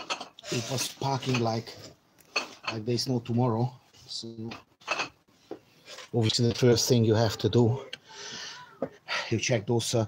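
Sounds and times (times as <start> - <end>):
man speaking: 6.1 - 8.1, 9.1 - 10.0.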